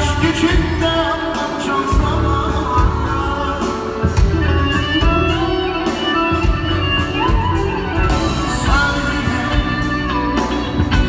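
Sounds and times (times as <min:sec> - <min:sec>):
live band guitar music: 0:00.0 - 0:11.0.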